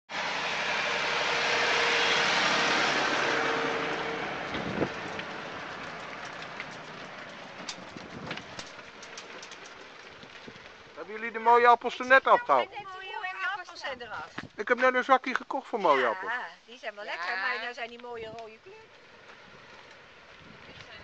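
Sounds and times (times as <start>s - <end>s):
tractor engine passing: 0.1s - 21.0s
trailers rattling: 0.2s - 16.0s.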